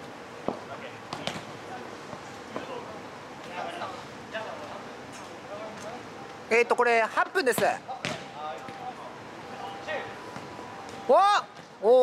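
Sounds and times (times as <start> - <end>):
ball thud: 7.5 - 8.3.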